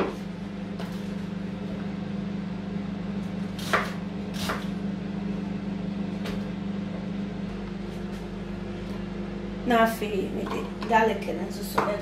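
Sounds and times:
low appliance hum: 0.0s - 12.0s
knife cutting through onion: 3.6s - 4.8s.

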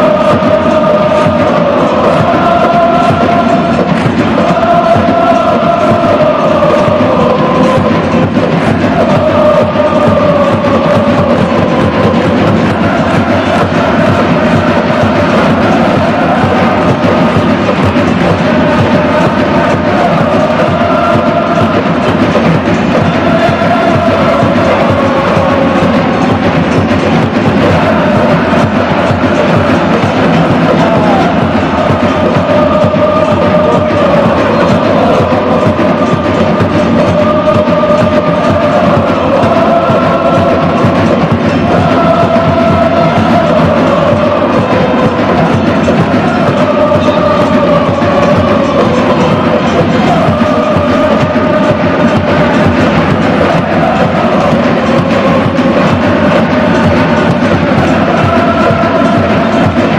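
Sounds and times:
crowd chanting in unison: 0.0s - 59.9s
drums beating: 0.0s - 59.9s.

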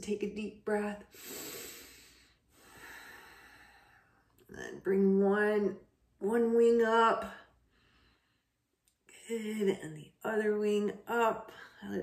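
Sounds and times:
woman breathing deeply: 1.1s - 4.4s, 7.5s - 8.7s.

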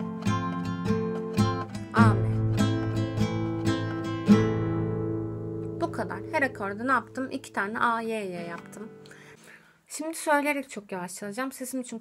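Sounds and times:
acoustic guitar strumming: 0.0s - 9.5s.

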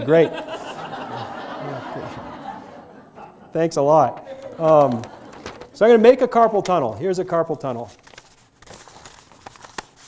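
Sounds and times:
paper rustling and clicking: 4.1s - 10.0s.

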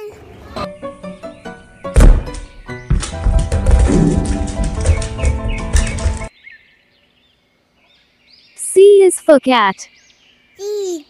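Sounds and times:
background music: 0.7s - 6.3s
tennis balls bouncing on wooden floor: 2.0s - 6.3s.

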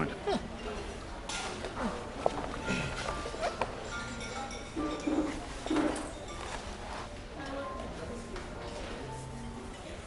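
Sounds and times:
restaurant chatter: 0.0s - 10.0s
soft background music: 0.0s - 10.0s.

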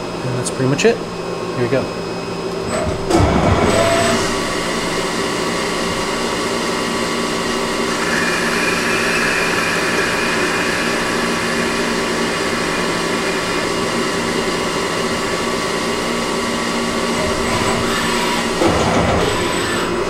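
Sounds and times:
lathe spindle whine: 3.5s - 20.0s
lathe tool cutting hiss: 6.2s - 16.3s, 17.0s - 20.0s.

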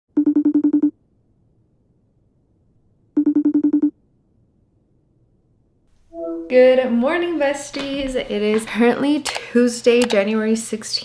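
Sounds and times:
phone ringtone trilling: 0.2s - 0.9s, 3.2s - 3.9s.

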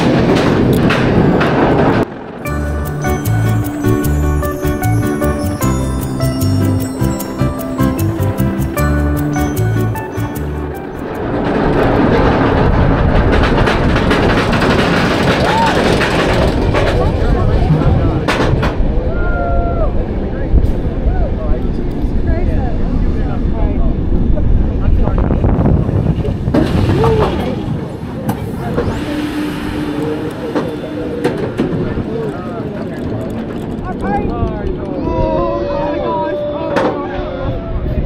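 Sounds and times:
wind buffeting microphone: 0.0s - 2.5s, 10.8s - 38.0s
roller coaster train rumbling: 0.0s - 38.0s.

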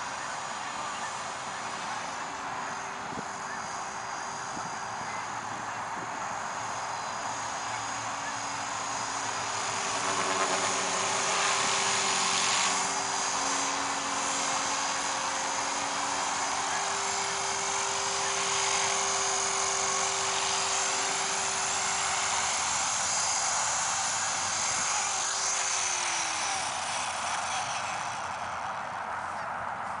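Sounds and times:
rc helicopter motor whining: 0.0s - 29.5s
rotor wash hiss: 3.5s - 28.8s.

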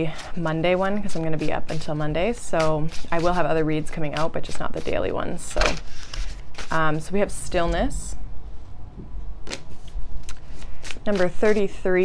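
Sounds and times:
cards being handled: 4.2s - 6.8s, 9.4s - 11.7s.

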